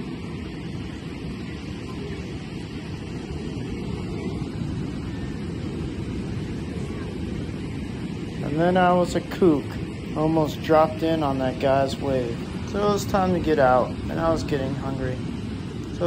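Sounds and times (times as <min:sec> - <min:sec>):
ocean waves on rocky beach: 0:00.0 - 0:16.0.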